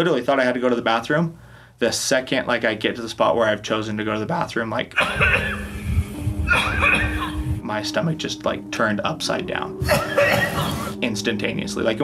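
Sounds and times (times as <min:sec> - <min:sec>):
quiet background music: 0:02.1 - 0:12.0
man chuckling: 0:05.0 - 0:07.5, 0:09.8 - 0:11.0.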